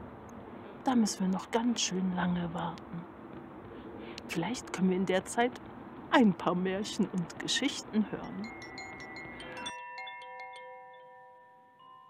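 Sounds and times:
metal chimes ringing: 8.0 - 12.0.

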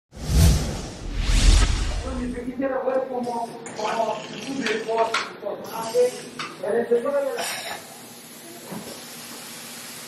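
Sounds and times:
whoosh with deep rumble: 0.1 - 2.5.

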